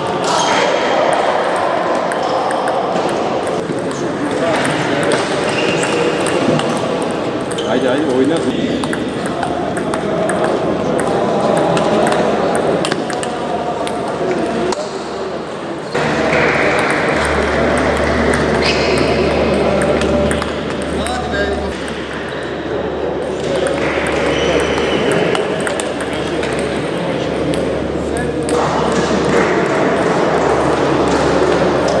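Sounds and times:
chatter of voices: 0.0 - 32.0
table tennis balls clicking: 1.0 - 14.8, 16.0 - 22.5, 23.2 - 29.6.

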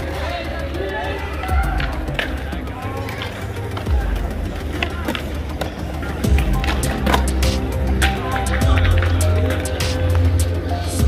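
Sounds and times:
skateboards clacking on ground: 0.0 - 10.5
background music: 0.0 - 11.0
skateboard wheels rolling on concrete: 0.0 - 11.0.

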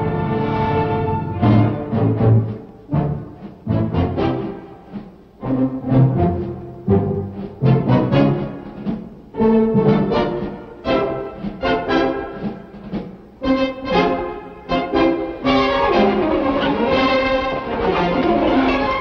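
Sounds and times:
orchestral music with brass: 0.0 - 19.0.

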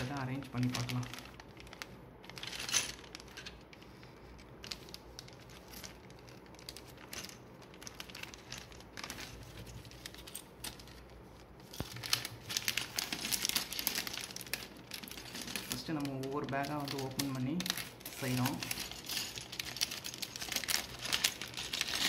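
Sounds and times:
plastic bags crinkling: 0.0 - 22.0.

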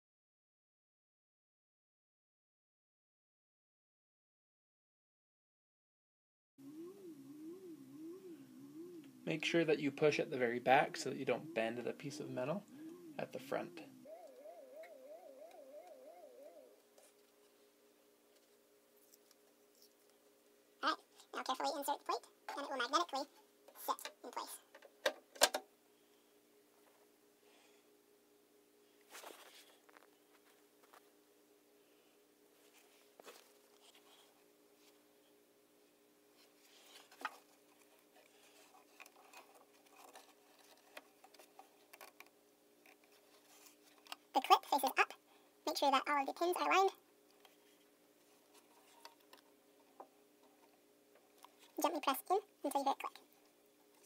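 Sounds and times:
faint wavering tone: 6.6 - 9.5, 10.8 - 16.8
faint steady hum: 6.6 - 54.0.

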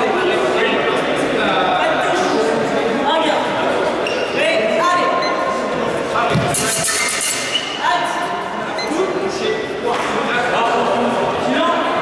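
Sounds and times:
echoing voices and chatter: 0.0 - 12.0.

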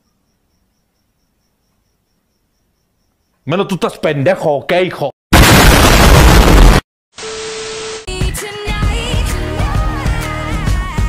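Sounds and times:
distorted explosion: 5.3 - 6.8.

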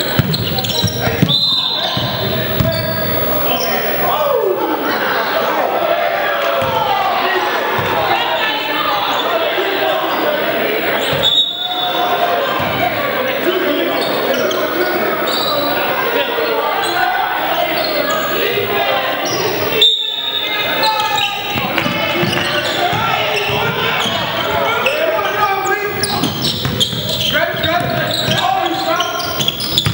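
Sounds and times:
echoing voices in hall: 0.0 - 29.9.

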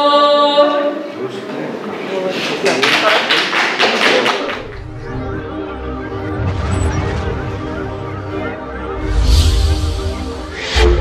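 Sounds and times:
audience applauding: 2.4 - 5.0.

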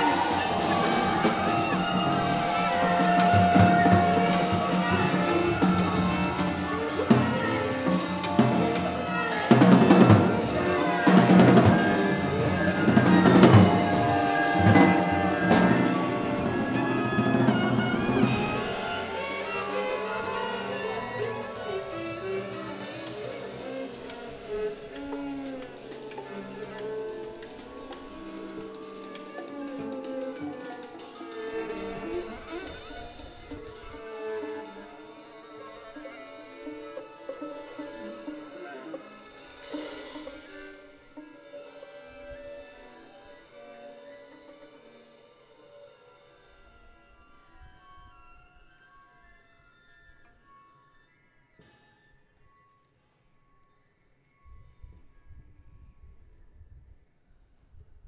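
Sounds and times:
drum kit strokes: 0.0 - 41.8
bowed strings: 0.0 - 43.1
cymbal swell: 0.0 - 46.6.

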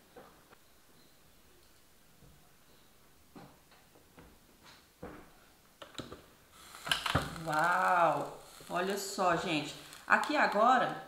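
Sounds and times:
batter sizzling: 6.2 - 11.0.

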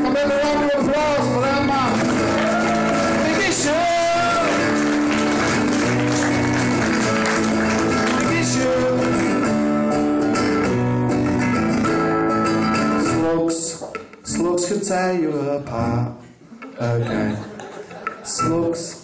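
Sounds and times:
acoustic guitar strumming chords: 0.0 - 14.6.

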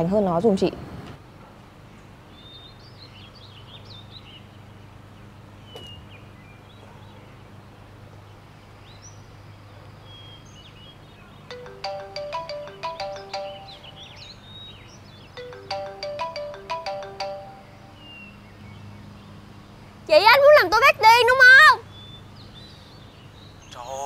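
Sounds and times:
phone ringtone melody: 11.5 - 14.5, 15.4 - 18.0.

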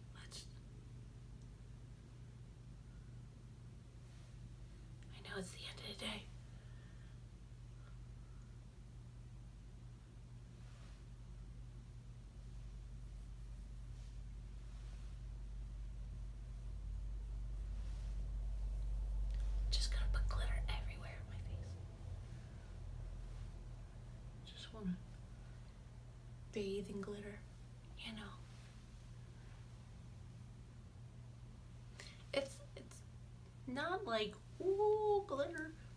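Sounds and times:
person whispering: 0.0 - 0.6, 5.1 - 6.3, 19.6 - 21.8
woman whispering: 0.0 - 0.6, 5.0 - 6.4, 19.4 - 21.9, 24.4 - 25.2, 26.5 - 28.6, 33.7 - 35.8
faint low hum: 0.0 - 35.9.

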